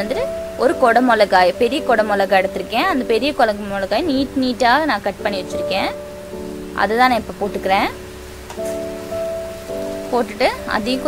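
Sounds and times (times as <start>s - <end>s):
background music chord: 0.0s - 11.0s
vegetables sizzling in a pan: 3.7s - 11.0s.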